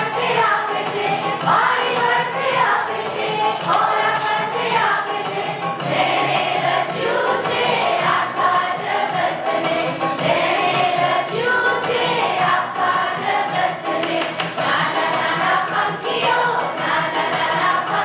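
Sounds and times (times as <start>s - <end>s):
group singing a religious song: 0.0s - 18.0s
music with steady beat: 0.0s - 18.0s.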